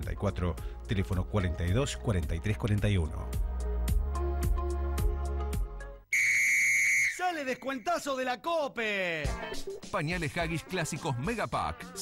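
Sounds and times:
high-pitched whistle-like tone: 6.1s - 7.4s.

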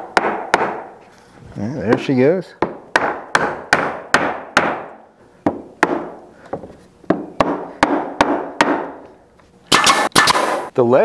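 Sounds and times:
rubber mallet knocking wood: 0.0s - 0.9s, 1.9s - 9.0s
nail gun firing: 9.7s - 10.7s.

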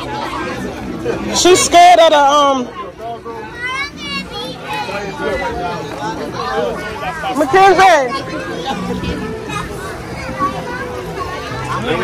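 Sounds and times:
adult voices: 0.0s - 12.0s
children chattering and calling out: 0.0s - 12.0s.

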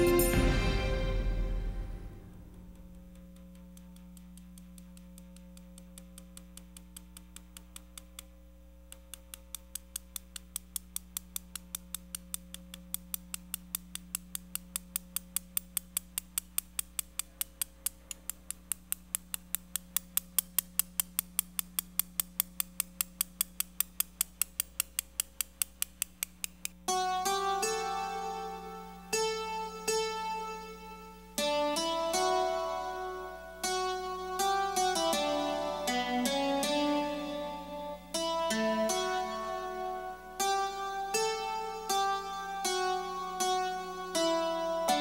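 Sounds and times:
steady low hum: 0.0s - 42.3s
sharp ticking: 2.3s - 45.0s.

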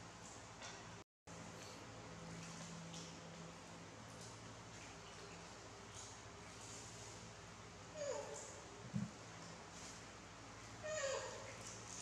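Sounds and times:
monkey high call: 10.8s - 11.6s.

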